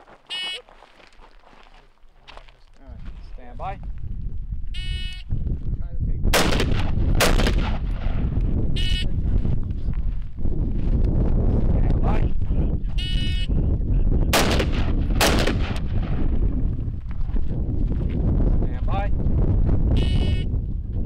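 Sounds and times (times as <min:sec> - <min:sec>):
rifle shots: 0:06.3 - 0:08.4, 0:14.3 - 0:16.4.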